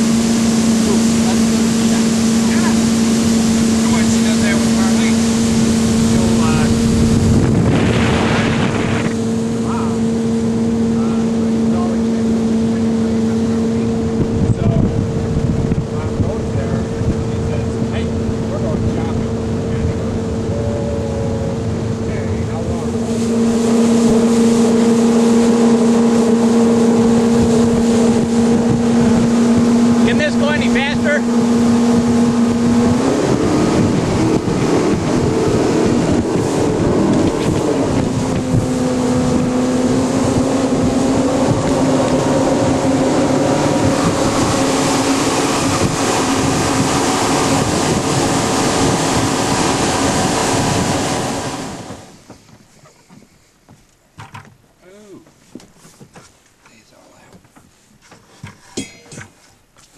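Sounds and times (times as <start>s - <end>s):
wind rush: 0.0s - 52.6s
water rushing over hull: 0.0s - 53.2s
outboard motor running: 0.0s - 59.8s.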